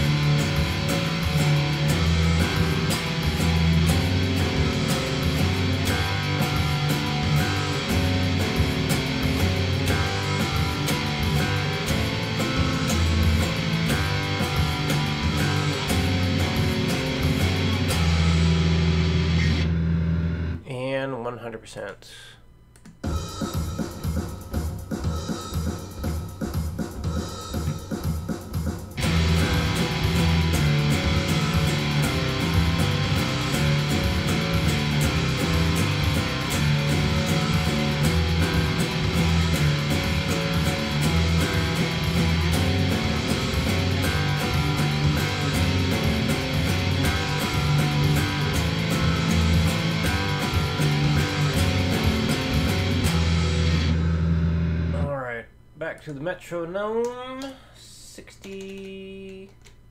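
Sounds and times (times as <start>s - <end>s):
backing track drums: 0.0s - 20.6s, 22.6s - 56.3s
electric guitar chord riff: 0.0s - 20.6s, 29.0s - 55.3s
bass guitar: 0.0s - 20.8s, 23.0s - 55.5s
even metronome ticks: 28.6s - 53.4s.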